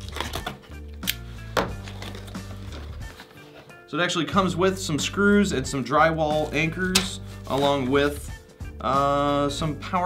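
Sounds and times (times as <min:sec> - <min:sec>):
background music: 0:00.0 - 0:10.0
cardboard box handled and opened: 0:01.8 - 0:03.7.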